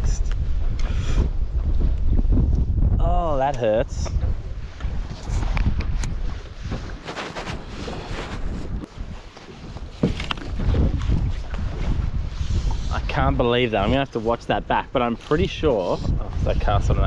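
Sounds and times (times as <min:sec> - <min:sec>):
wind buffeting microphone: 0:00.0 - 0:17.0
fishing line and rod rustling: 0:04.2 - 0:13.0.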